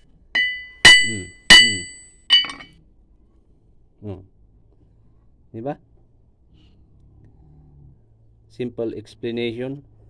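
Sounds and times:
hammer striking metal: 0:00.4 - 0:02.7.

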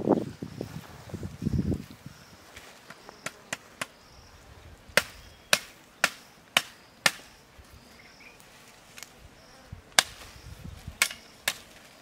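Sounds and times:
blade chopping green branch: 0:05.0 - 0:07.3, 0:10.0 - 0:10.3, 0:11.0 - 0:11.8.

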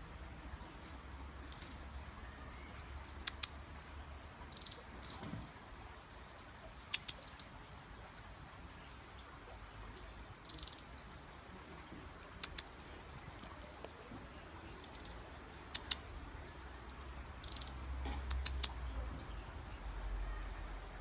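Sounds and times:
robin singing: 0:00.5 - 0:03.8, 0:04.4 - 0:05.1, 0:05.8 - 0:11.5, 0:12.2 - 0:21.0
sharp clicks: 0:12.4 - 0:12.8, 0:15.7 - 0:16.0, 0:17.4 - 0:18.8.

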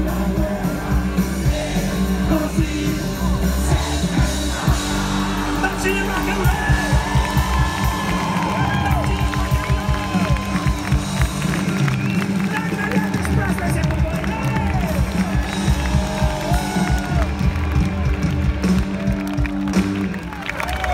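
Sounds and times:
crowd voices: 0:00.0 - 0:20.9
live rock band: 0:00.0 - 0:20.9.

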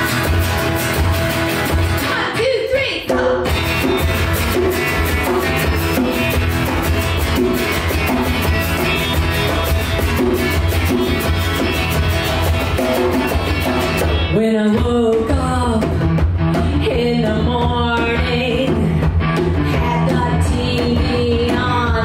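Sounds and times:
hand-drum beat: 0:00.0 - 0:02.4, 0:03.0 - 0:22.0
guitars playing: 0:00.0 - 0:22.0.

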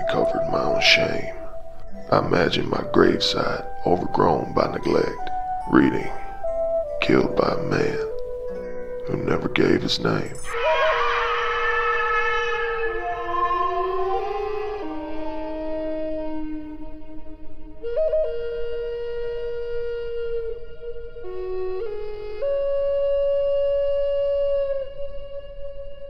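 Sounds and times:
wind instrument holding long note: 0:00.0 - 0:26.0
woodwind melody: 0:00.0 - 0:26.0.

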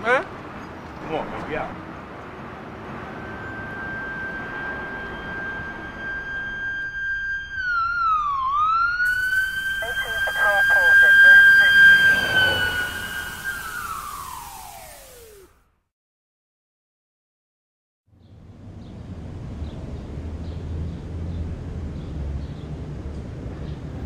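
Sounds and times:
siren wailing: 0:02.9 - 0:15.6.

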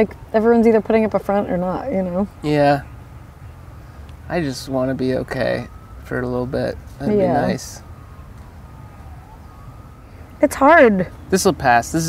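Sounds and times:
faint emergency vehicle siren wailing: 0:00.0 - 0:12.0.

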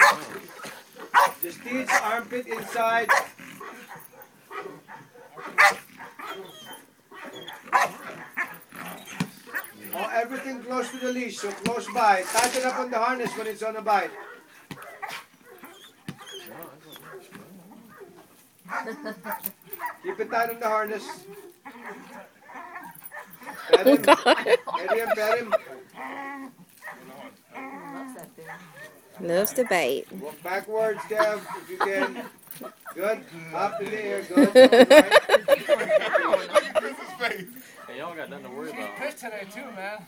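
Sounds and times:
dog barking: 0:00.0 - 0:09.8, 0:14.1 - 0:20.3, 0:21.1 - 0:24.3, 0:26.8 - 0:27.1, 0:28.4 - 0:29.2, 0:30.9 - 0:31.7.

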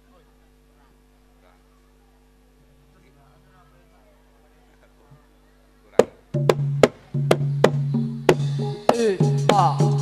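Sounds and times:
sharp drum strikes: 0:06.0 - 0:10.0.

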